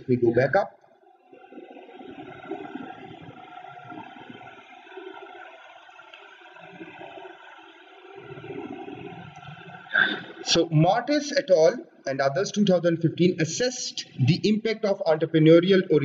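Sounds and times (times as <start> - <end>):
faint hum: 0.0 - 16.0.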